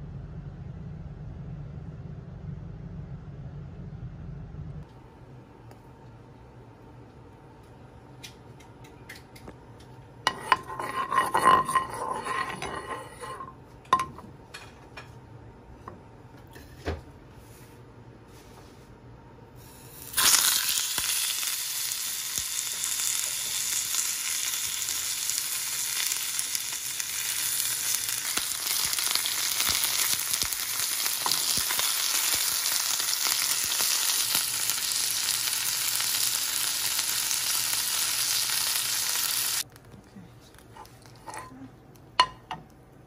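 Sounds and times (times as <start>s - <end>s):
fish sizzling in hot oil: 19.8s - 39.7s.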